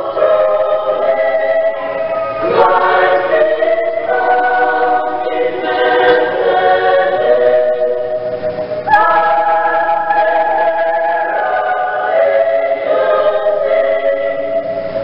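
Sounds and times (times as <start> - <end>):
choir singing in harmony: 0.0 - 15.0.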